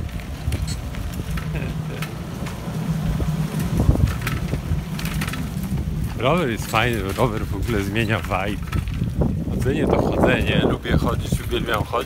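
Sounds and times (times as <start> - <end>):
bicycle clicks and rattles: 0.0 - 12.0
wind buffeting microphone: 0.0 - 12.0.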